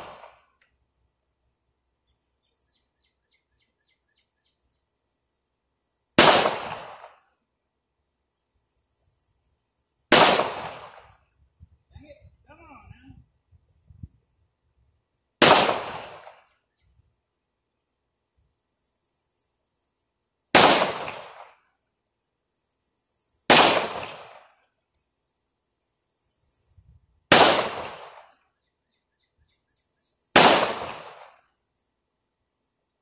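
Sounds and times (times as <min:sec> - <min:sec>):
gunshots: 0:00.0 - 0:00.4, 0:06.2 - 0:07.2, 0:10.1 - 0:11.2, 0:15.4 - 0:16.4, 0:20.5 - 0:21.6, 0:23.5 - 0:24.5, 0:27.3 - 0:28.3, 0:30.3 - 0:31.4.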